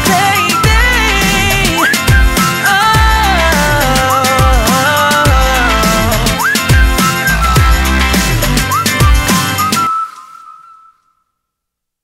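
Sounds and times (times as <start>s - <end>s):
whistled note: 1.8s - 2.8s, 5.8s - 11.6s.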